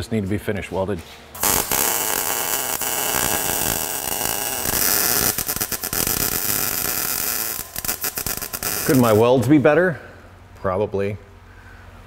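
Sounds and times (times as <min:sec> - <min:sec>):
arc welding crackling buzz: 0:01.3 - 0:09.8.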